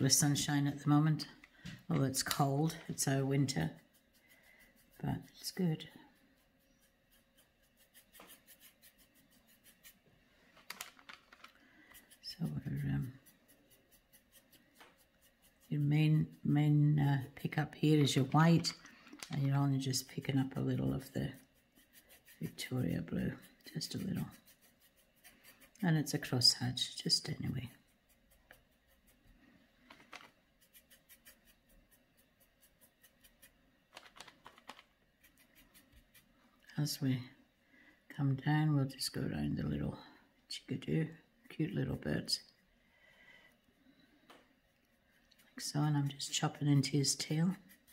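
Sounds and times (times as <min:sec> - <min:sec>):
paintbrush scratching on canvas: 0:00.0 - 0:10.1, 0:11.7 - 0:37.0, 0:44.6 - 0:47.9.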